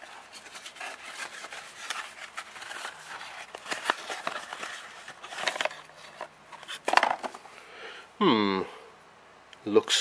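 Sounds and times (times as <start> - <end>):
paper rustling against cardboard: 0.0 - 7.4.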